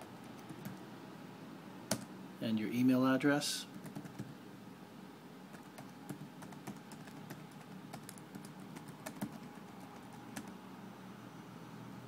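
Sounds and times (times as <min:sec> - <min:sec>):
typing on computer keyboard: 0:00.2 - 0:00.8, 0:03.7 - 0:04.3, 0:05.5 - 0:10.6.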